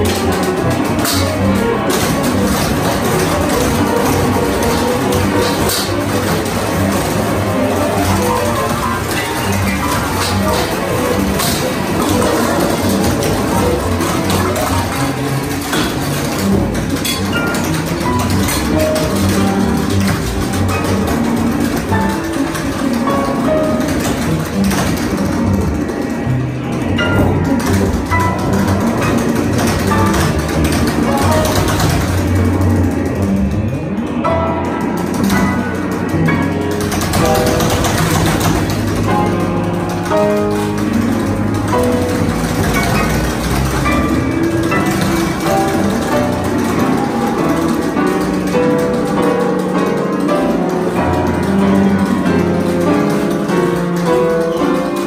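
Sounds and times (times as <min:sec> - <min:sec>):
piano notes: 0:00.0 - 0:55.0.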